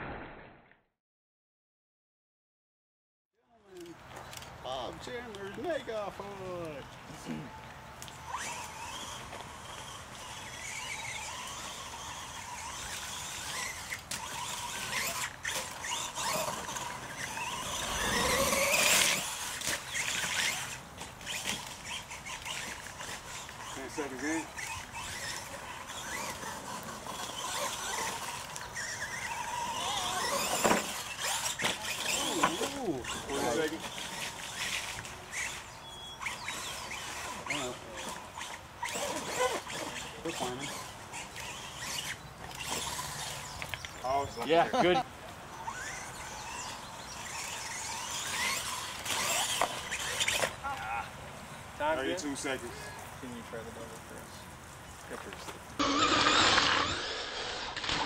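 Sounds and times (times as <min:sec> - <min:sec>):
toy truck motor whining: 0:07.2 - 0:44.9, 0:45.5 - 0:51.2, 0:55.2 - 0:58.0.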